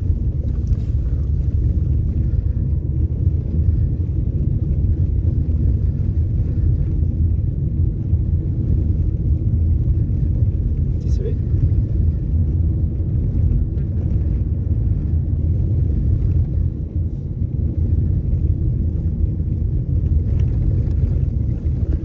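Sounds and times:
car cabin road rumble: 0:00.0 - 0:22.0.

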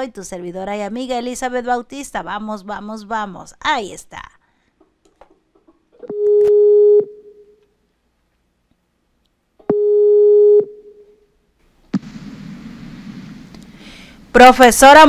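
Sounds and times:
call ringing tone beep: 0:06.1 - 0:07.5, 0:09.7 - 0:11.0
faint open line hiss: 0:11.6 - 0:14.7.

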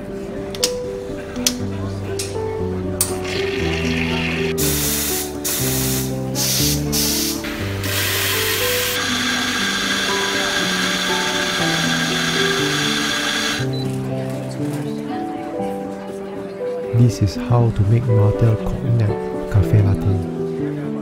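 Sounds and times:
background music: 0:00.0 - 0:21.0
short hiss bursts: 0:04.6 - 0:09.0
coffee grinder whirring: 0:07.8 - 0:13.6.

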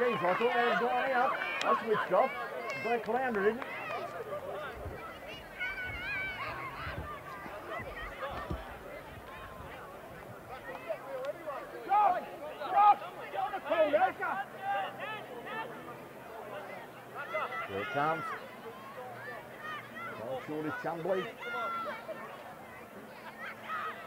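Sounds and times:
distant people shouting: 0:00.0 - 0:24.0.

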